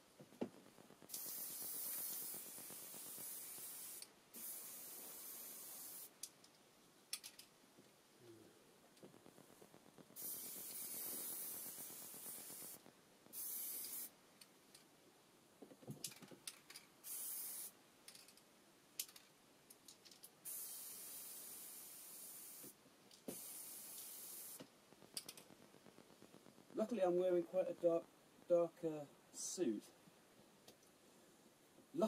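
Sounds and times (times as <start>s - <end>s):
aerosol spray can hissing: 1.1s - 6.2s, 10.2s - 14.1s, 17.0s - 17.8s, 20.4s - 24.7s.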